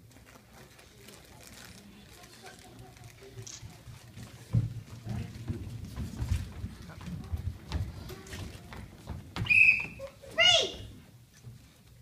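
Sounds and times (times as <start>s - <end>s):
footsteps on wooden stage: 3.6s - 11.7s.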